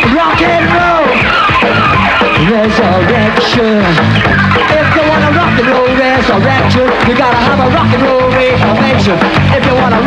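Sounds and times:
live rock band: 0.0s - 10.0s
person singing: 0.0s - 10.0s.

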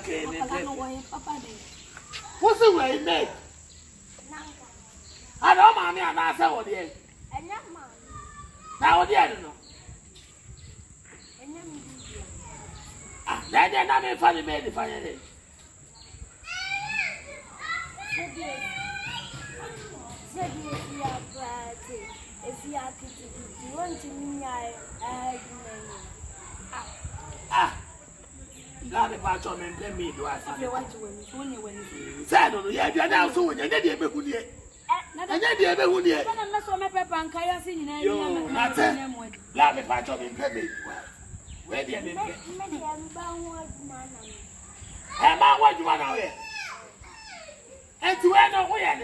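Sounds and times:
crickets trilling: 0.0s - 49.0s
child speaking: 7.6s - 8.8s, 42.2s - 45.4s
people talking: 17.3s - 44.5s.

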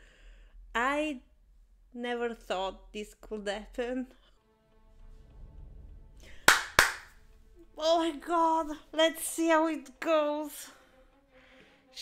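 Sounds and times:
faint music: 1.9s - 12.0s
sharp hand claps: 6.4s - 7.1s.

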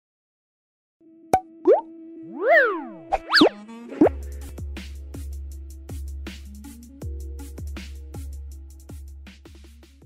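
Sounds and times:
swooping pitch glides: 1.6s - 4.1s.

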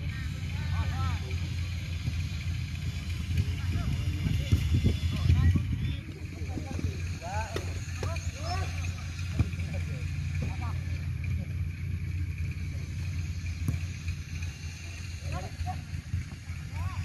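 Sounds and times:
steady low rumble: 0.0s - 17.0s.

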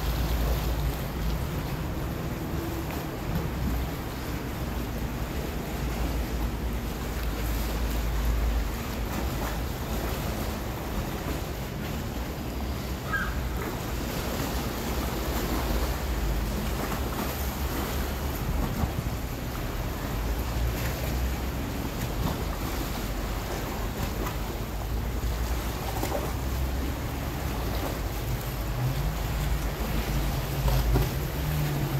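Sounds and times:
choppy water: 0.0s - 31.9s.

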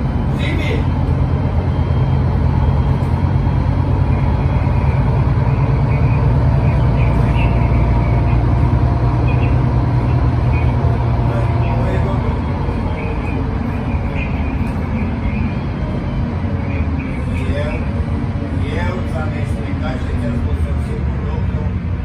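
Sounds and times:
bus engine drone: 0.0s - 22.0s
road noise: 0.0s - 22.0s.

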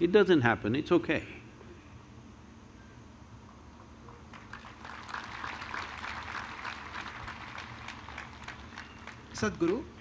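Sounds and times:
audience applauding: 4.3s - 9.8s.

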